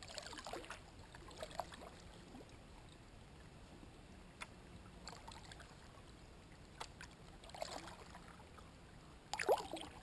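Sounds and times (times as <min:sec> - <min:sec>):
paddle water splashes: 0:00.0 - 0:03.5, 0:04.3 - 0:10.0
water gurgling: 0:09.3 - 0:10.0.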